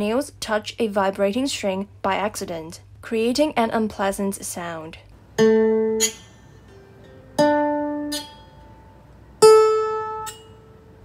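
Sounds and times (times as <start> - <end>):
lyre harp notes plucked: 5.4 - 11.0.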